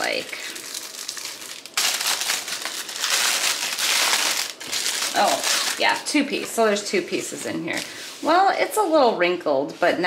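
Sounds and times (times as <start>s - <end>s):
plastic wrapping crinkling: 0.0s - 8.4s.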